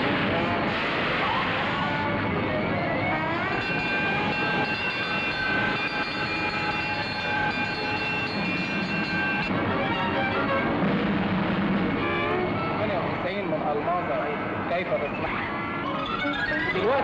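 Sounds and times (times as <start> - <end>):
fire truck siren: 0.0 - 13.2
engine and road noise: 0.0 - 17.0.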